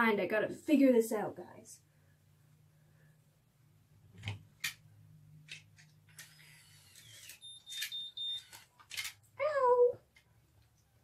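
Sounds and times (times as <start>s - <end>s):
clicks: 5.4s - 9.2s
high electronic beep: 7.4s - 8.5s.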